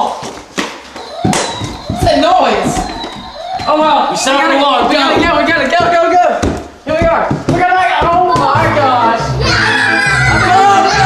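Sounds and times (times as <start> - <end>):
indistinct voices: 1.0 - 11.0.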